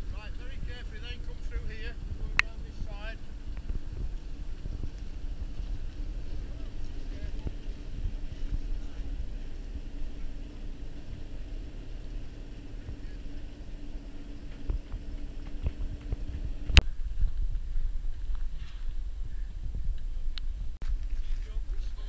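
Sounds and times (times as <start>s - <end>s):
faint steady hum: 0.0s - 22.0s
wind buffeting microphone: 0.0s - 22.0s.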